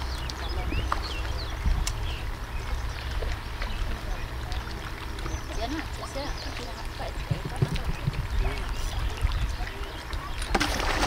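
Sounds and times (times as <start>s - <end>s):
low wind rumble on microphone: 0.0s - 11.0s
river water sloshing against log: 0.0s - 11.0s
water splashing rush: 0.0s - 11.0s.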